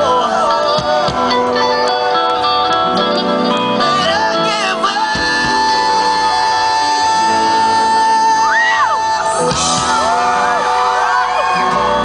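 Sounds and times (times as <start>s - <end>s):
male singer: 0.0s - 2.4s, 3.6s - 12.0s
live band playing loudly: 0.0s - 12.0s
audience whooping: 5.6s - 12.0s.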